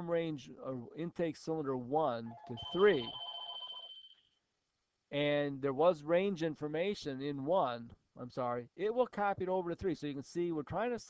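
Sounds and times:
high electronic beep: 0:02.3 - 0:04.2.

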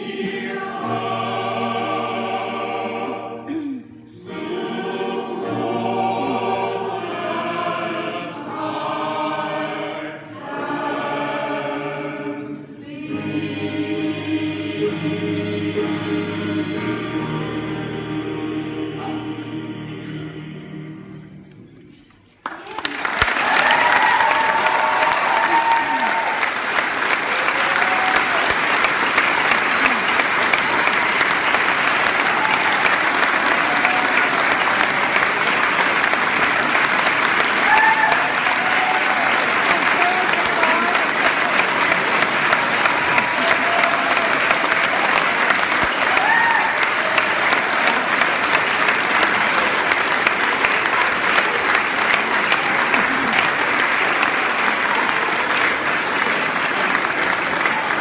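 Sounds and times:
audience applauding: 0:22.4 - 0:58.0
voices over clapping: 0:22.4 - 0:58.0.

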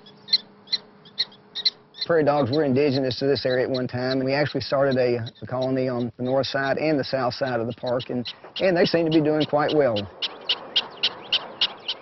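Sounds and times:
prairie dog barking chirps: 0:00.0 - 0:12.0.

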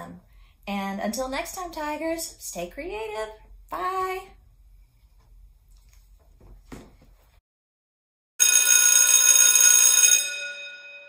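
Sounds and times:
bell ringing: 0:08.4 - 0:11.0.

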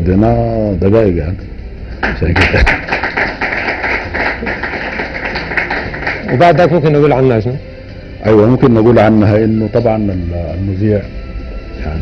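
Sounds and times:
audience clapping: 0:02.0 - 0:07.0.

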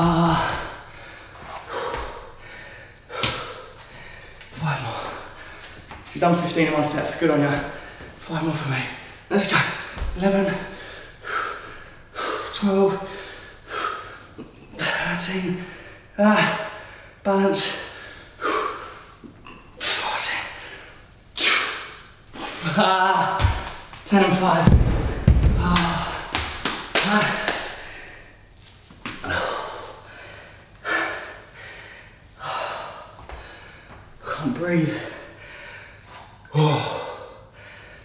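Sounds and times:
man breathing hard and grunting: 0:00.0 - 0:05.8, 0:09.7 - 0:19.2, 0:29.1 - 0:38.0
dumbbells thudding on floor: 0:24.6 - 0:27.0.

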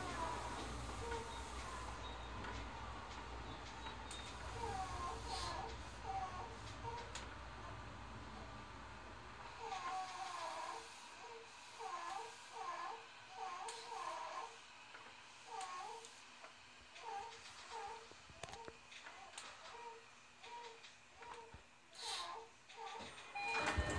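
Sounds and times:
faint high vocal sounds: 0:00.0 - 0:02.6, 0:03.8 - 0:07.8.

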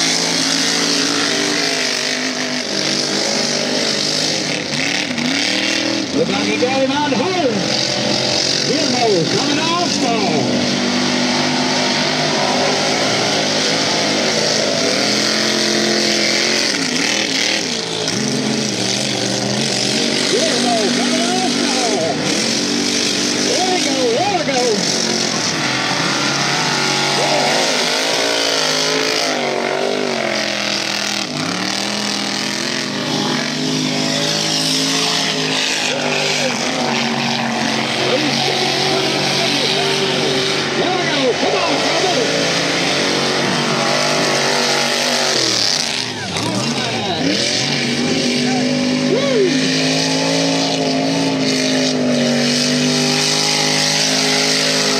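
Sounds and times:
race truck engine revving: 0:00.0 - 0:54.9.

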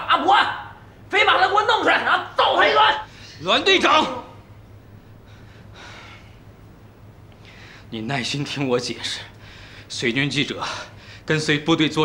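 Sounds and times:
faint room hum: 0:00.0 - 0:12.0
man breathing in: 0:05.2 - 0:06.4, 0:07.4 - 0:07.9, 0:09.4 - 0:09.9.

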